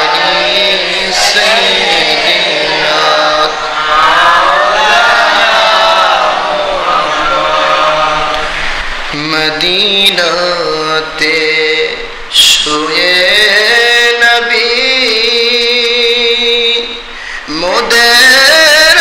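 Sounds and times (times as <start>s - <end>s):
man chanting melodically: 0.0s - 3.7s, 9.1s - 19.0s.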